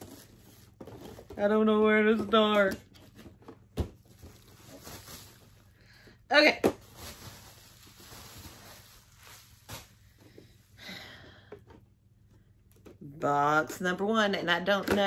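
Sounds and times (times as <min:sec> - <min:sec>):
bubble wrap and plastic rustling: 0:00.0 - 0:10.6.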